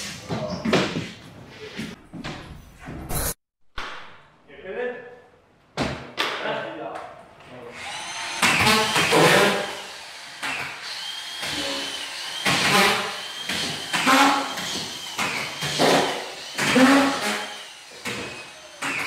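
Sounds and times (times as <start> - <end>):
motor whining: 7.8 - 12.5.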